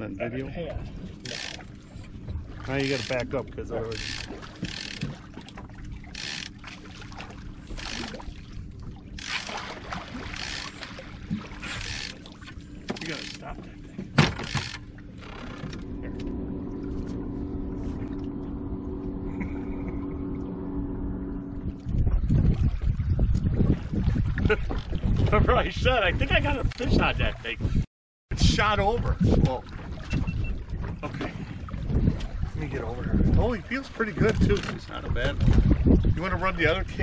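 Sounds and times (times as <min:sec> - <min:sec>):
boat motor humming: 0:00.0 - 0:27.6, 0:28.4 - 0:37.0
wind buffeting microphone: 0:15.8 - 0:37.0.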